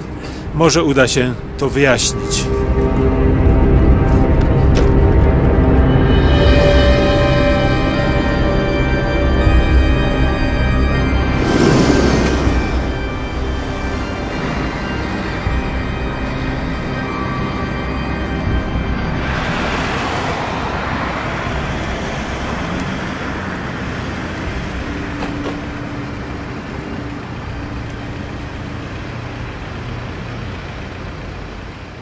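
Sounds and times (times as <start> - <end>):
passing cars road noise: 0.0 - 32.0
vehicle passing close: 11.1 - 17.0, 18.4 - 30.5.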